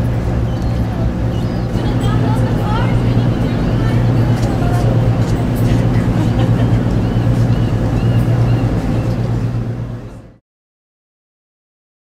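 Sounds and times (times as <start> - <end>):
faint voices: 0.0 - 10.4
ferry engines droning: 0.0 - 10.4.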